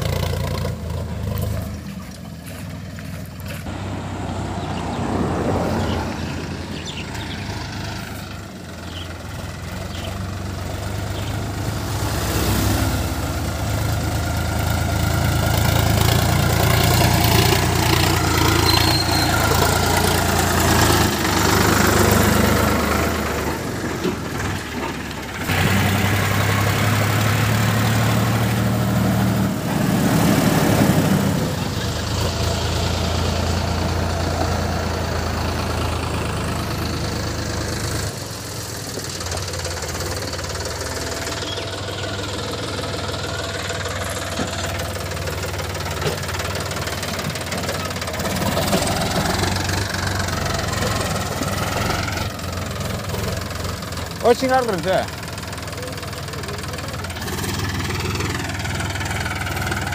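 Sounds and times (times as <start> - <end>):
tractor diesel engine under load: 0.0 - 59.9.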